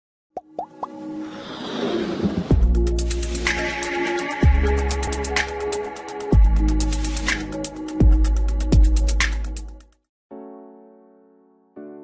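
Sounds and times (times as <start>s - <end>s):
electronic music: 2.5s - 9.8s.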